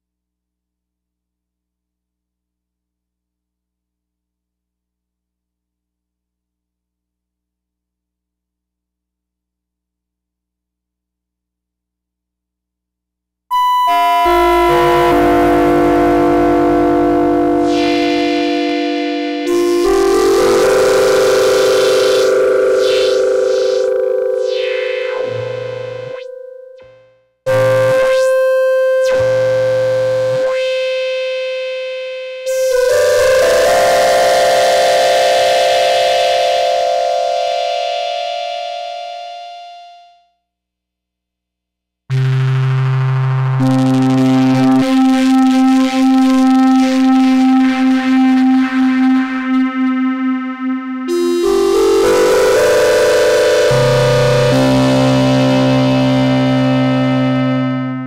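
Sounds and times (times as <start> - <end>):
analog synthesizer chords: 13.6 - 40.2, 42.1 - 58.0.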